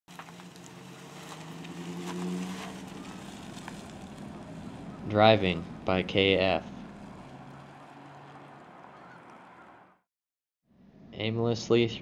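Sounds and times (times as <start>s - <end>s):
pickup truck engine pulling away: 0.1s - 10.0s.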